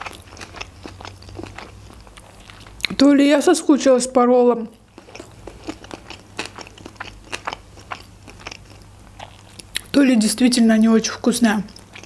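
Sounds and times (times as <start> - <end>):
wet chewing clicks and crunches: 0.0 - 3.0, 4.7 - 10.0, 11.7 - 12.0.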